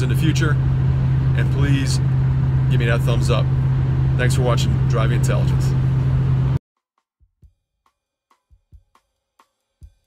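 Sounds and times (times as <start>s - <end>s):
in-cab road and engine drone: 0.0s - 6.6s
soft kick-drum beats: 7.0s - 10.0s.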